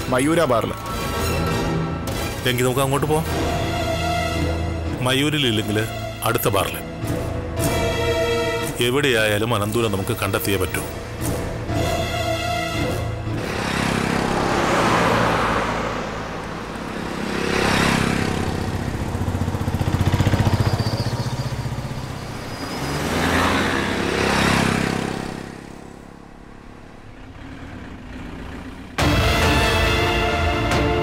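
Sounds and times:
cars driving by: 0.0s - 30.7s.

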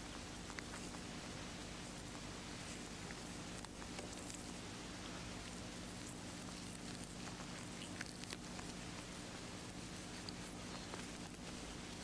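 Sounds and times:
low hum and hiss: 0.0s - 12.0s
skin crackling and rustling: 0.0s - 12.0s.

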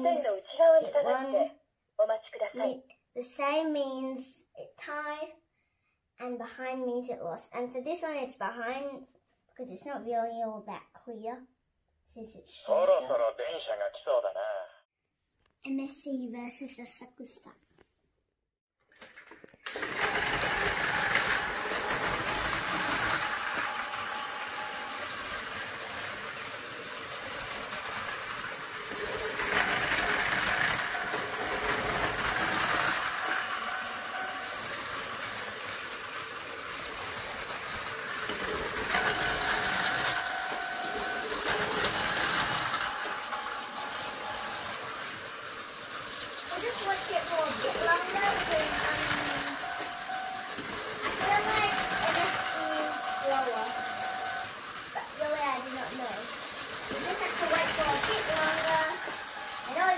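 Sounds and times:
toy train wheel clatter: 18.9s - 59.9s
toy train motor whine: 19.1s - 59.9s.

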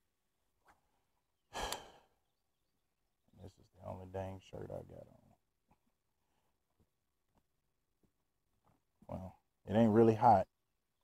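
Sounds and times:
man sighing: 1.5s - 2.1s.

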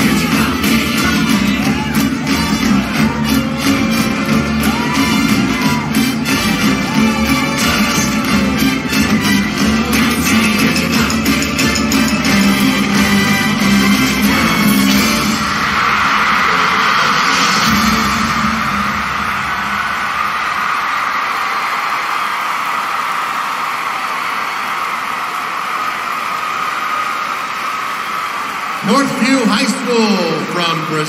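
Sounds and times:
show music: 0.0s - 22.8s, 28.4s - 31.0s
arena crowd cheering and applauding: 0.0s - 31.0s.

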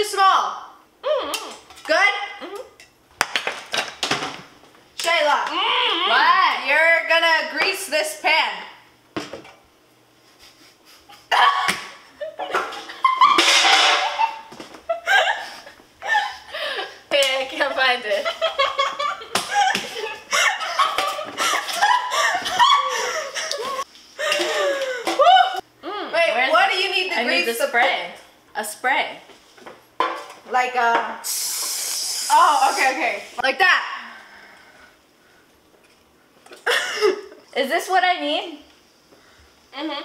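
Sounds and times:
people laughing and squealing: 18.2s - 25.6s
spray bottle hissing: 31.2s - 33.0s.

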